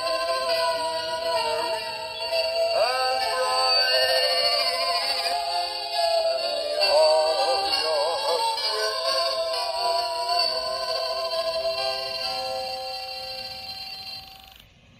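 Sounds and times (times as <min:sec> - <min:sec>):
toy speaker playing a sung melody: 0:00.0 - 0:14.6.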